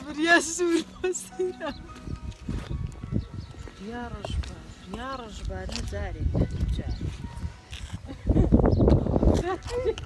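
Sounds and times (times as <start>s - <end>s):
wind buffeting microphone: 1.8s - 10.0s.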